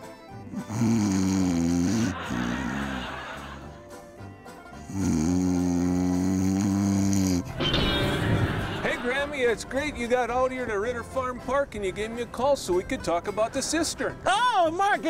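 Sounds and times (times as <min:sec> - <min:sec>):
exaggerated comic snoring: 0:00.4 - 0:03.9, 0:04.8 - 0:07.5.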